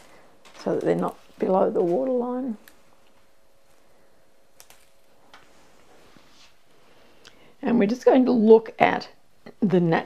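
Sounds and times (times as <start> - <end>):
handling foliage stems: 0.0 - 6.5.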